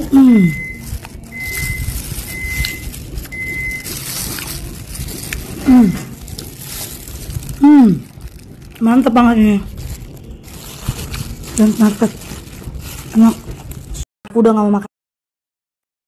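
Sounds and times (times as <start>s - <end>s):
woman humming mmm: 0.0s - 1.4s, 5.6s - 6.2s
woman chewing: 0.0s - 8.8s.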